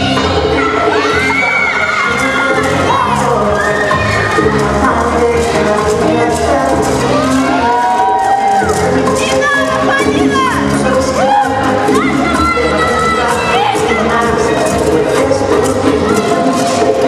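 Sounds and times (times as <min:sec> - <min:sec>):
audience cheering and shouting: 0:00.0 - 0:17.0
bachata music over loudspeakers: 0:00.0 - 0:17.0.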